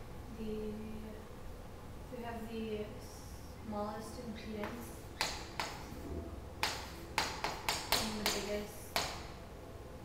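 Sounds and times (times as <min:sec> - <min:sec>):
chalk tapping on chalkboard: 0:04.6 - 0:05.9, 0:06.6 - 0:09.3.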